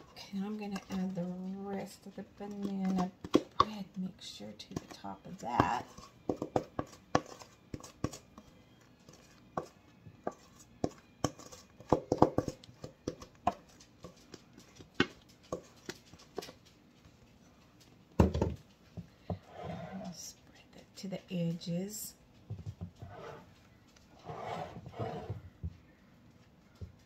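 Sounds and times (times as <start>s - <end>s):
utensil scraping metal bowl: 4.6s - 8.2s, 9.1s - 14.2s, 19.4s - 20.2s, 23.0s - 23.5s, 24.2s - 25.4s.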